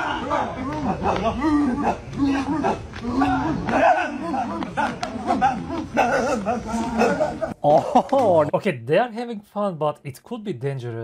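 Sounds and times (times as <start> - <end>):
men barking shouts: 0.0 - 8.5.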